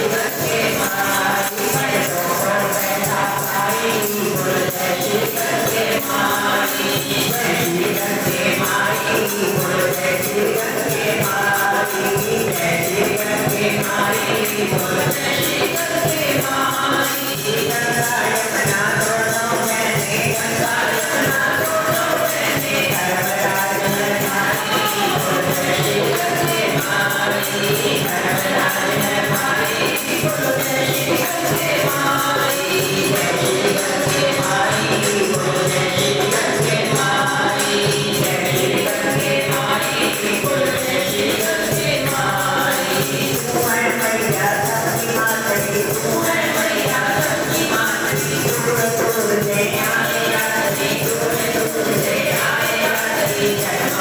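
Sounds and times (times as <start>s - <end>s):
group singing a hymn: 0.0s - 54.0s
hand drum: 0.0s - 54.0s
jingling hand percussion: 0.0s - 54.0s.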